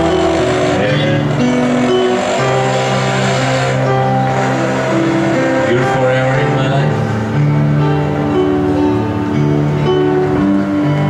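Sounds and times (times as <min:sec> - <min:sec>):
low bass note: 0:00.0 - 0:10.6
electronic keyboard chords: 0:00.0 - 0:11.0.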